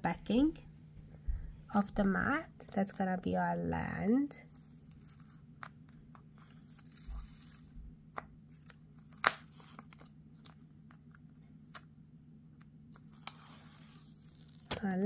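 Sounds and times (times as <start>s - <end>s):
low steady hum: 0.0s - 15.0s
paper backing peeling: 4.4s - 11.9s, 12.6s - 15.0s.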